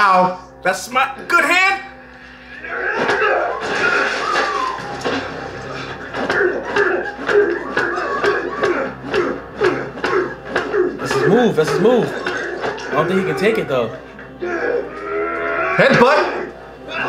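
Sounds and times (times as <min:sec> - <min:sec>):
men grunting and shouting: 0:02.5 - 0:04.7, 0:05.6 - 0:17.0.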